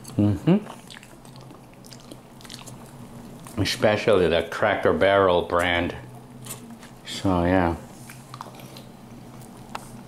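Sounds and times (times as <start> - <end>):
person chewing food: 0.0 - 3.6, 8.0 - 10.0
steady low hum: 0.0 - 10.0.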